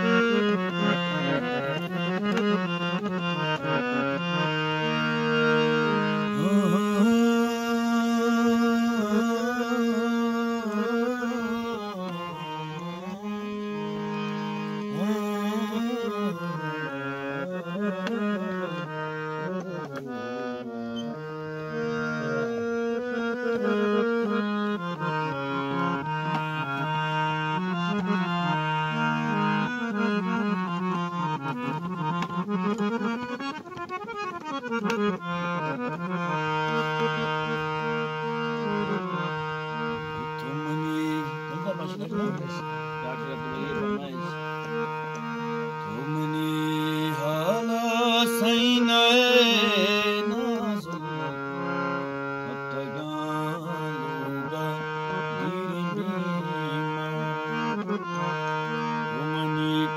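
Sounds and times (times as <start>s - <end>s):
harmonium melody: 0.0s - 59.9s
man singing wordlessly: 6.1s - 20.8s, 40.2s - 59.9s.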